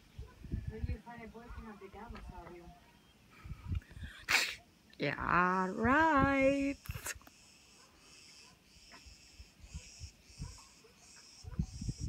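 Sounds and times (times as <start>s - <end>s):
short sharp sneeze: 4.3s - 4.6s.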